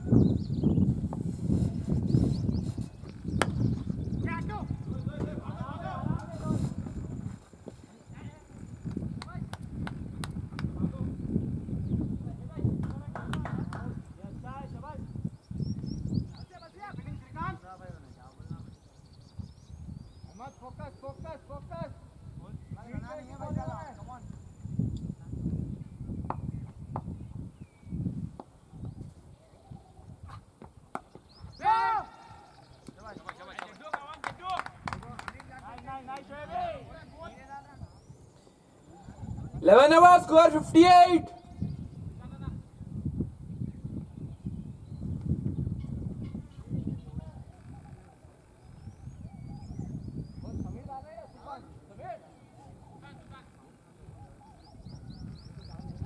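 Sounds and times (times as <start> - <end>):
wind rumbling on microphone: 0.0 - 56.0
distant calls and voices: 1.3 - 27.6, 28.4 - 42.8, 45.8 - 56.0
player shouting: 31.6 - 32.4, 39.6 - 41.4.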